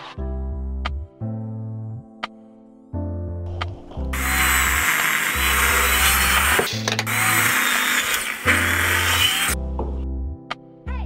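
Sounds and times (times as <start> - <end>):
background music: 0.0 - 11.0
miter saw cutting wood: 4.1 - 9.6.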